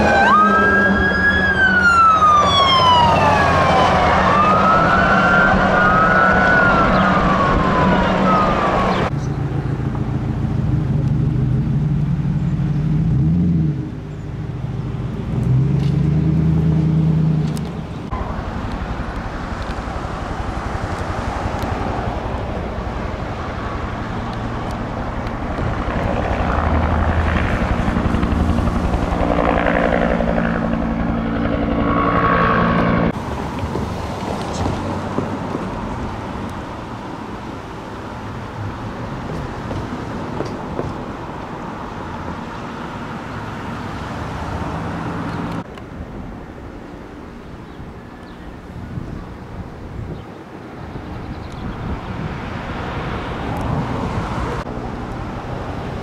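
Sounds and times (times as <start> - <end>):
fire vehicle siren wailing: 0.0 - 9.1, 18.1 - 33.8
helicopter running: 0.0 - 9.6, 18.2 - 33.3.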